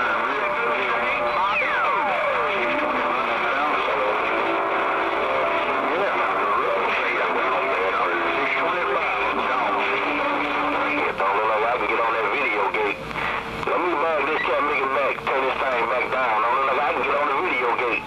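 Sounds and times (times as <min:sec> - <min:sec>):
radio static: 0:00.0 - 0:18.0
radio voices wavering in pitch: 0:00.0 - 0:18.0.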